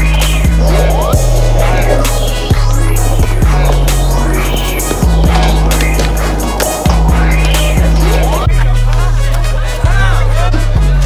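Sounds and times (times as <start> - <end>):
music with heavy bass: 0.0 - 11.0
skateboard rolling and grinding: 0.1 - 9.7.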